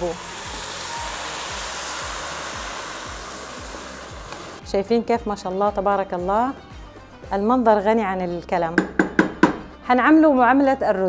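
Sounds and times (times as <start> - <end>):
liquid pouring into hot pan hissing: 0.0 - 4.6.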